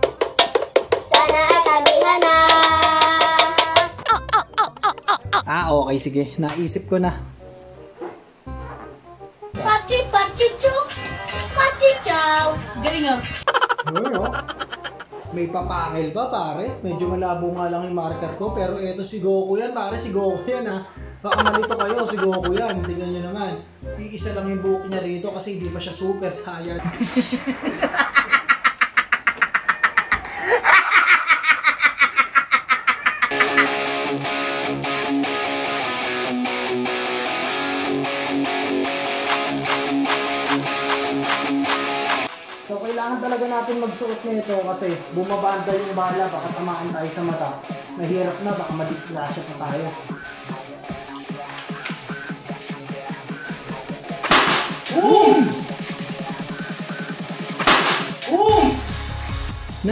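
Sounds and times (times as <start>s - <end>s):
man laughing hard: 4.0s - 5.6s, 13.5s - 15.1s, 21.3s - 23.0s, 26.8s - 33.8s
guitar music: 6.8s - 17.2s, 20.0s - 24.0s, 33.3s - 45.7s
electronic music with fast pulse: 21.3s - 23.0s, 48.9s - 59.9s
balloon bursting bang: 54.2s - 55.0s, 57.6s - 58.4s.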